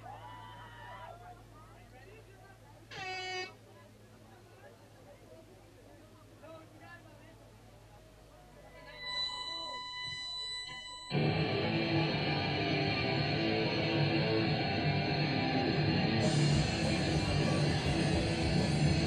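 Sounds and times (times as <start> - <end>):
steady high tone: 8.7 - 19.0
live punk rock band: 11.2 - 19.0.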